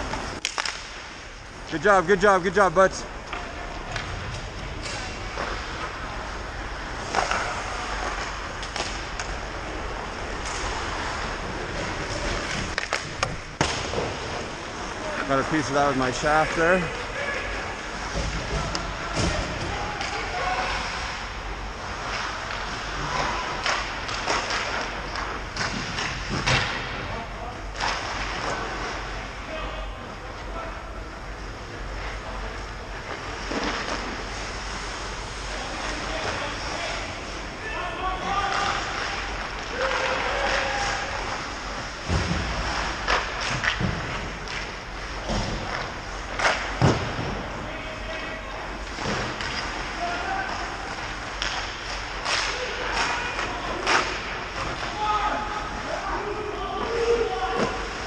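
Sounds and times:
hockey sticks and puck knocking: 0:07.0 - 0:09.5, 0:10.2 - 0:14.5
thuds against rink boards: 0:42.0 - 0:47.5.

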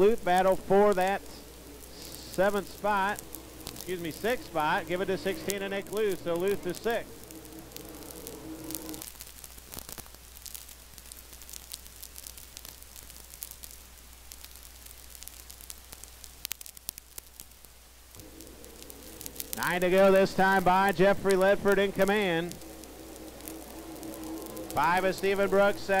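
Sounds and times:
faint steady tone: 0:00.0 - 0:09.2, 0:18.1 - 0:26.0
crackles: 0:00.0 - 0:26.0
faint hiss and electrical hum: 0:00.0 - 0:26.0.

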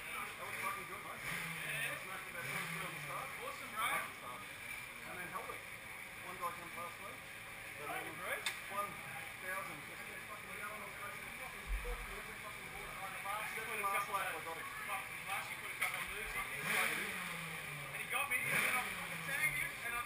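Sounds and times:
indistinct talking: 0:00.0 - 0:20.0.

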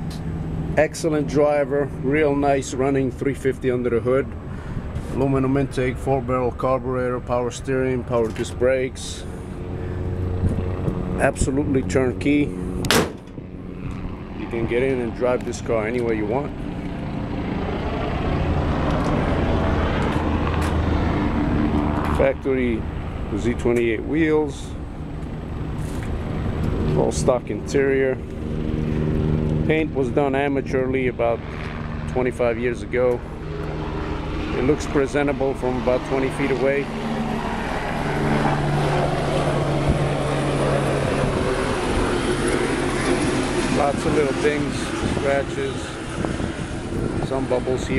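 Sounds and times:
car engine idling low drone: 0:00.0 - 0:47.9.

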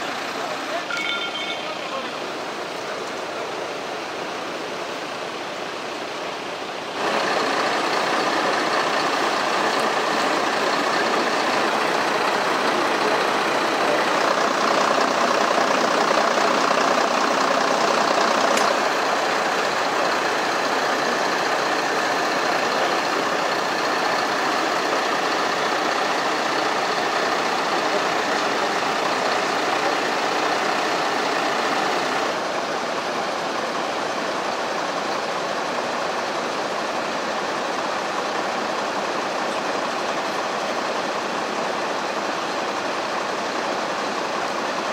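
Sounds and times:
fire engines idling: 0:00.0 - 0:44.9.

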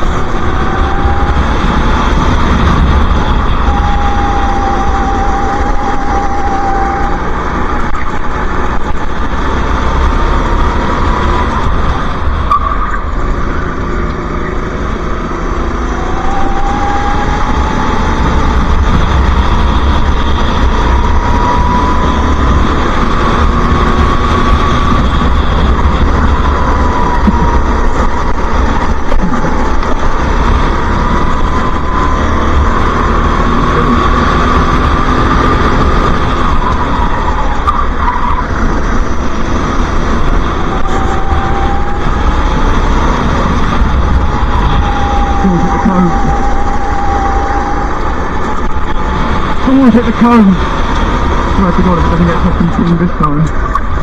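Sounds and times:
racing kart engine accelerating: 0:00.0 - 0:54.0
steady low rumble: 0:00.0 - 0:54.0.

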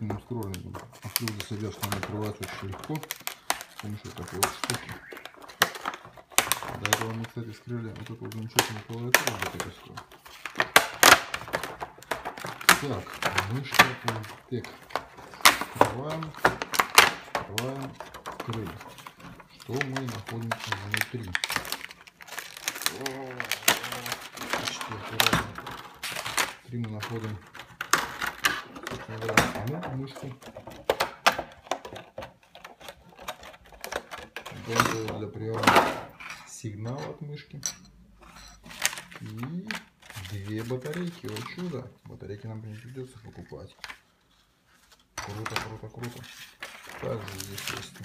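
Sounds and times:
plastic packaging clicking and crackling: 0:00.0 - 0:37.6, 0:38.4 - 0:48.0.

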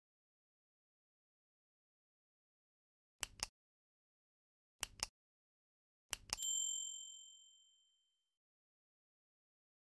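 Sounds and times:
mouse clicks: 0:03.2 - 0:03.5, 0:04.8 - 0:05.1, 0:06.1 - 0:06.4
bright bell ding: 0:06.4 - 0:08.1.

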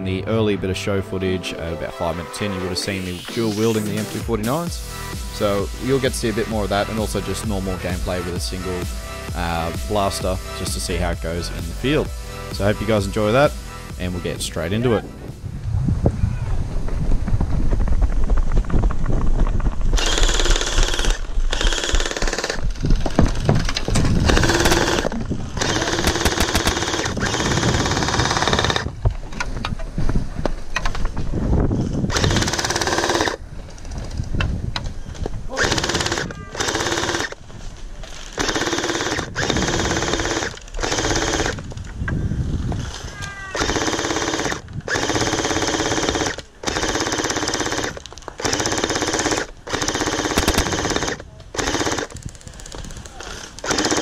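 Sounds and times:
gel blaster firing full auto: 0:20.0 - 0:28.9, 0:32.1 - 0:33.4, 0:35.6 - 0:37.4, 0:38.3 - 0:41.6, 0:43.6 - 0:54.0.

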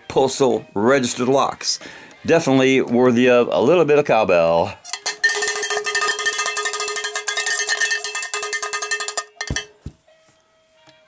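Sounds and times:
cowbell rattling: 0:04.9 - 0:09.8.

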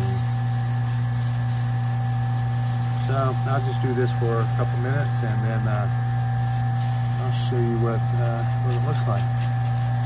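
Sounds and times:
paper towel buffing spinning wood: 0:00.0 - 0:10.0
wood lathe motor humming: 0:00.0 - 0:10.0.

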